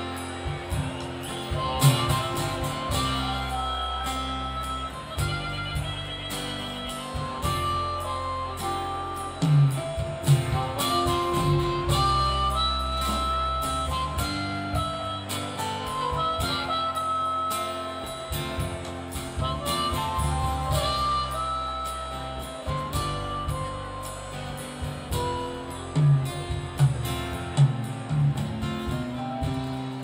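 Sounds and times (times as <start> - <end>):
acoustic guitar: 0.0 - 30.0
harmonica melody: 0.0 - 30.0
keyboard: 0.0 - 30.0
live rock band playing: 0.0 - 30.0.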